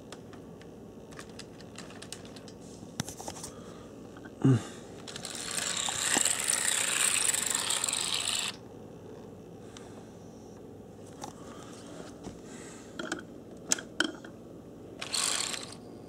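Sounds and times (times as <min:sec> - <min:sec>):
short grunt: 0:04.4 - 0:04.8.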